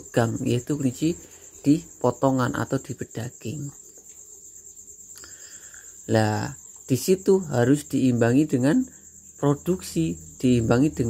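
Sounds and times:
crickets trilling: 0:00.0 - 0:11.0.

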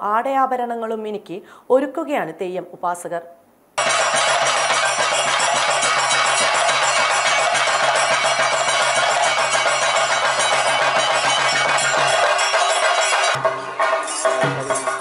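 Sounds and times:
rapid drumming: 0:03.8 - 0:15.0
ringing cymbals and bells: 0:03.8 - 0:15.0.

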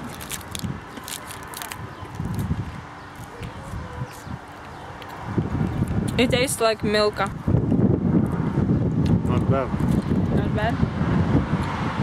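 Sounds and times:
chocolate bar being bitten and chewed: 0:00.0 - 0:02.5
foil wrapper crackling: 0:00.0 - 0:02.5.

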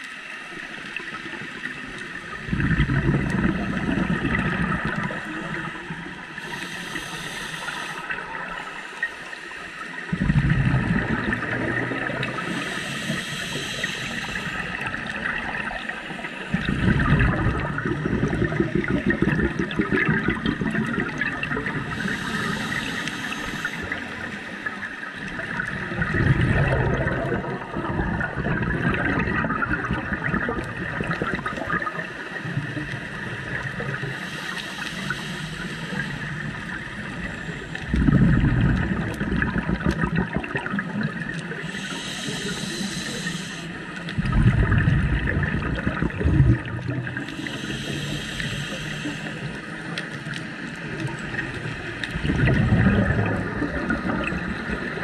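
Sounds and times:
exhaled bubbles bursting: 0:00.9 - 0:06.3, 0:10.1 - 0:12.6, 0:13.6 - 0:22.6, 0:25.2 - 0:34.1, 0:36.0 - 0:41.8, 0:44.0 - 0:47.6, 0:49.4 - 0:55.0
steady hiss: 0:04.0 - 0:10.1, 0:11.3 - 0:16.7, 0:21.7 - 0:26.0, 0:32.2 - 0:38.0, 0:41.3 - 0:44.2, 0:46.7 - 0:52.3
regulator inhale hiss: 0:04.4 - 0:10.2, 0:11.3 - 0:16.7, 0:21.8 - 0:25.2, 0:33.8 - 0:37.9, 0:41.3 - 0:44.2, 0:46.6 - 0:52.2.

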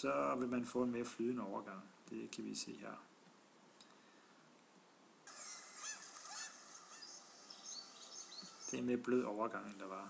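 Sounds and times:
faint outdoor hiss: 0:00.0 - 0:10.0
birds calling: 0:05.3 - 0:09.3.

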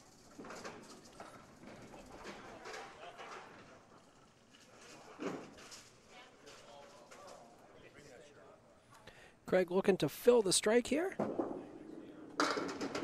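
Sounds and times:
low crowd chatter: 0:01.6 - 0:09.2, 0:11.2 - 0:13.0
bowling pins clattering: 0:11.2 - 0:13.0.

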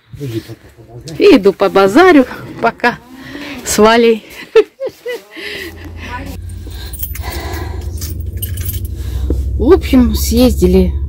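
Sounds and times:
car engine humming inside cabin: 0:05.6 - 0:11.0
keys jangling: 0:06.4 - 0:09.1.

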